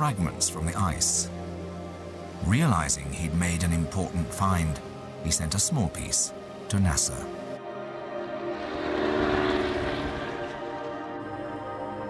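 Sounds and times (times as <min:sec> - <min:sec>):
propeller aircraft flying past: 0:07.6 - 0:12.0.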